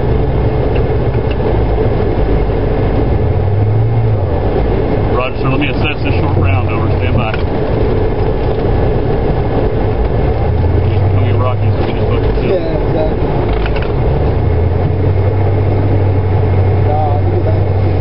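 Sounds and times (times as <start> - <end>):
loud engine drone: 0.0 - 18.0
faint voices: 5.1 - 7.6, 10.8 - 13.7.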